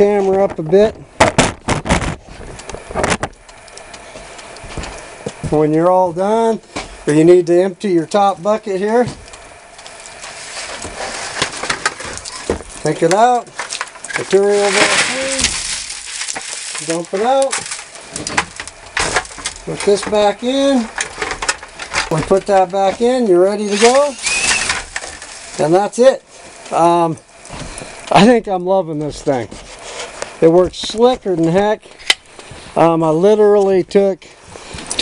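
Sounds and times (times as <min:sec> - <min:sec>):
plastic bucket rattling: 0:11.4 - 0:25.4.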